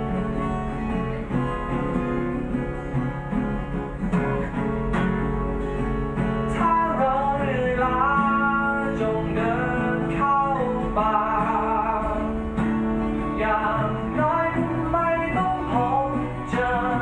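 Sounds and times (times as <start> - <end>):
acoustic guitars strumming: 0.0 - 17.0.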